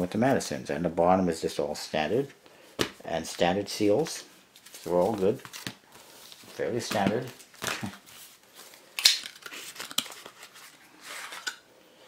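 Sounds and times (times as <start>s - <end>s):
card and paper rustling: 4.6s - 11.6s.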